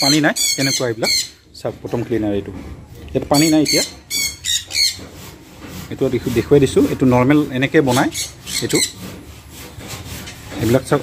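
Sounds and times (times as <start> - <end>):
bird squawking: 0.0 - 1.4, 3.3 - 5.2, 7.9 - 9.0.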